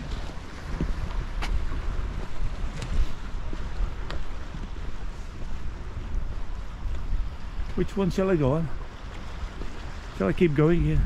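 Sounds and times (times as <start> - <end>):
distant sea wash: 0.0 - 11.0
wind buffeting microphone: 0.0 - 11.0.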